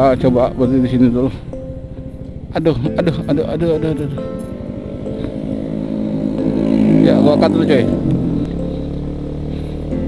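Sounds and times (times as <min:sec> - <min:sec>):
motor scooters passing: 0:03.8 - 0:10.0.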